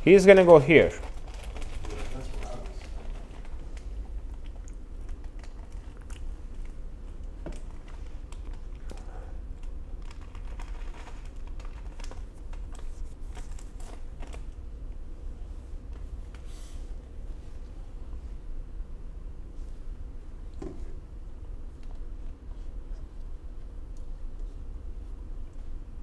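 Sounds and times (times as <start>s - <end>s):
low steady hum: 0.0s - 26.0s
small clicks and handling noise: 0.5s - 15.0s.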